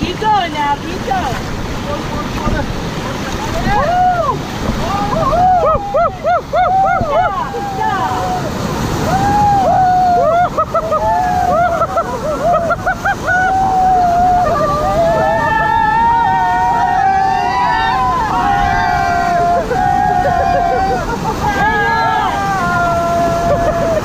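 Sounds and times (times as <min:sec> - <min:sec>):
whitewater rapids rushing: 0:00.0 - 0:24.0
people whooping and yelling: 0:03.5 - 0:24.0.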